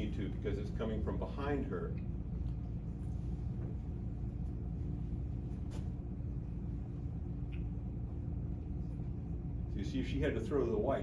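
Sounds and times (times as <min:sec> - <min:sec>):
faint steady hum: 0:00.0 - 0:11.0
room background rumble: 0:00.0 - 0:11.0.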